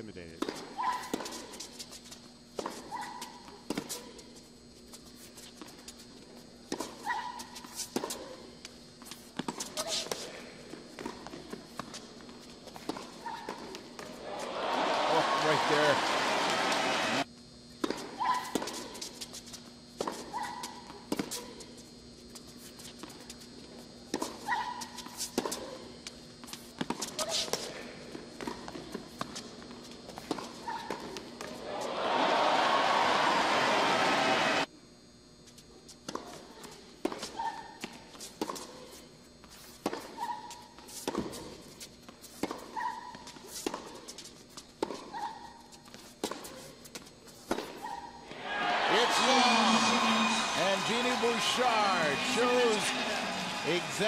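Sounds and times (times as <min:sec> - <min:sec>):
racket hitting tennis ball: 0:00.4 - 0:01.8, 0:24.1 - 0:25.9, 0:39.8 - 0:41.6, 0:42.3 - 0:49.5
shoe squeaks: 0:00.7 - 0:06.1, 0:06.9 - 0:08.3, 0:11.9 - 0:13.6, 0:17.9 - 0:23.5, 0:24.4 - 0:25.8, 0:26.6 - 0:27.6, 0:30.4 - 0:31.1, 0:37.2 - 0:48.2
footfalls on court: 0:09.0 - 0:17.2, 0:26.4 - 0:34.4
crowd applause: 0:14.2 - 0:17.3, 0:31.6 - 0:34.7, 0:48.3 - 0:54.0.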